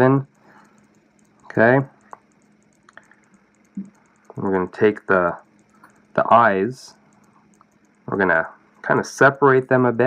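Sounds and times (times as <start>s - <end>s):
low steady hum: 0.0s - 10.0s
faint tool clicks: 0.3s - 4.8s, 6.9s - 8.1s.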